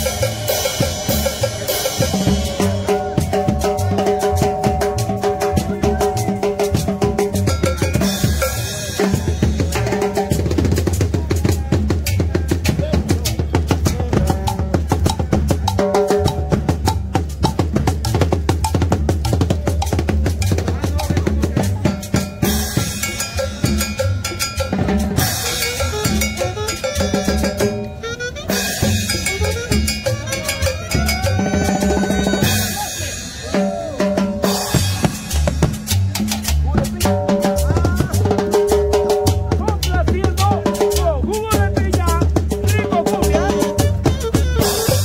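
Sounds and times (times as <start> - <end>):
snare and bass drum beat: 0.0 - 32.9, 33.5 - 45.0
live dance band playing: 0.0 - 45.0.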